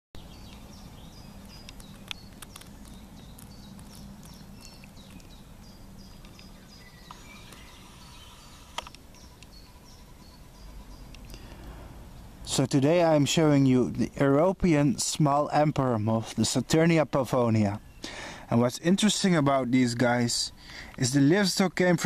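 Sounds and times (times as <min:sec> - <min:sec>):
low background rumble: 0:00.2 - 0:21.1
small birds chirping: 0:00.2 - 0:22.0
sharp clicks: 0:01.4 - 0:05.4, 0:08.7 - 0:09.5.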